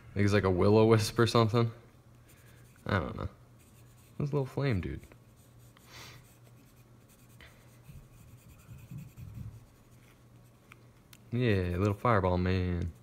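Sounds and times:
pencil scratching on paper: 2.3 - 4.3, 5.2 - 10.5.

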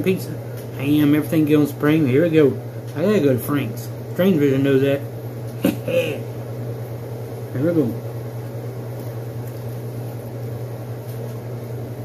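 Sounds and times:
kitchen appliance humming: 0.0 - 12.0.

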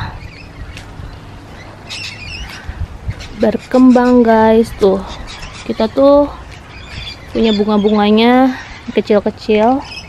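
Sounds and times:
bird squawking call: 0.0 - 9.1
low uneven background rumble: 0.0 - 10.0.

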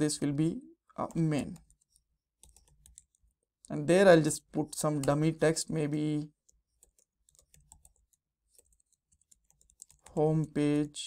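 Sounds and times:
faint typing on computer keyboard: 0.9 - 3.8, 6.3 - 10.6.

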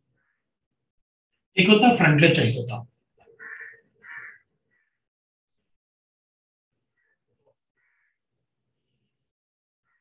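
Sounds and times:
crow cawing: 0.1 - 0.6, 3.2 - 5.1, 6.9 - 8.3.

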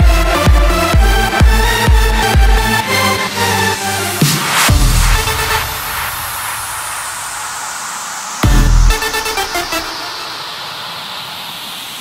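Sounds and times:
heavy bass hits: 0.0 - 2.8, 4.7 - 5.9, 8.4 - 9.2
white-noise sweep falling: 4.2 - 12.0.

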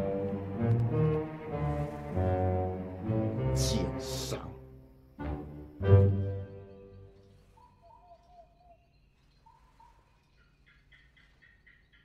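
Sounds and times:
faint bird chirps: 6.3 - 12.0.

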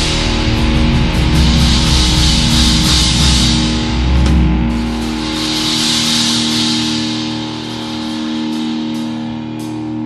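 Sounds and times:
distorted electric guitar chord: 0.0 - 10.0
drums and bass: 0.0 - 10.0.

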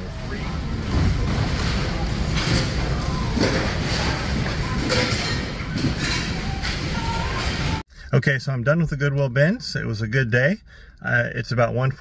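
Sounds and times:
distant shoppers' voices: 0.0 - 7.8.

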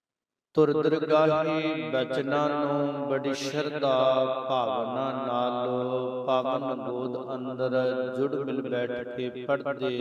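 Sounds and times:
man chanting: 0.6 - 10.0.

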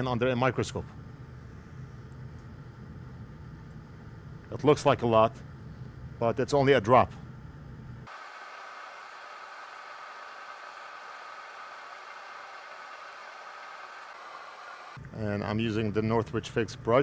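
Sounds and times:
steady hiss: 8.1 - 17.0.

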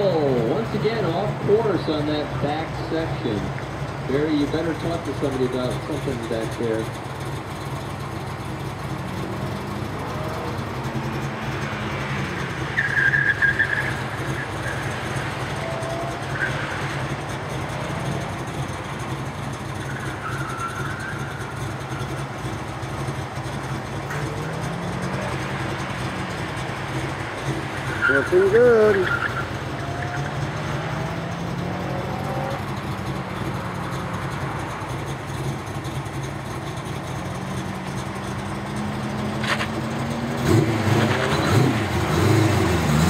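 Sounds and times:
distant car engine revving: 0.0 - 43.0
tyre squeal: 10.1 - 22.6, 27.4 - 32.8, 40.8 - 41.8.

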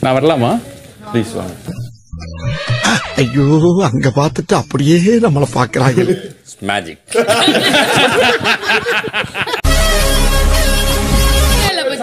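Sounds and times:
rough noisy cry: 2.4 - 3.8
people talking: 11.7 - 12.0.

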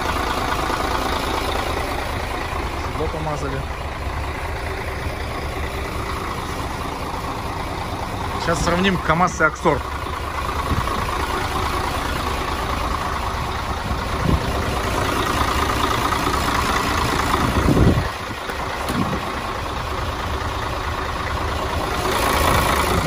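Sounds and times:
truck diesel engine idling: 0.0 - 23.0.

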